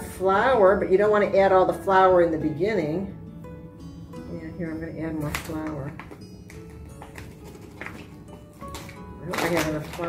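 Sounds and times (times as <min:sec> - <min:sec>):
soft background music: 0:00.0 - 0:10.0
paper bag rustling and tapping: 0:05.2 - 0:10.0.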